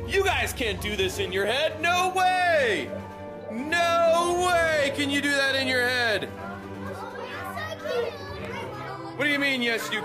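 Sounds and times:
quiz game background music: 0.0 - 10.0
children chattering: 6.0 - 10.0.

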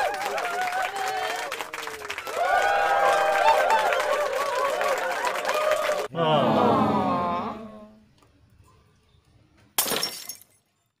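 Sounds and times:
glass shattering crash: 9.8 - 10.7.

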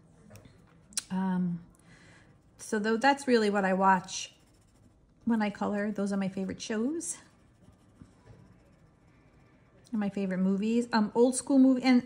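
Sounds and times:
marker tip scratching on paper: 3.4 - 5.0, 7.3 - 9.4.

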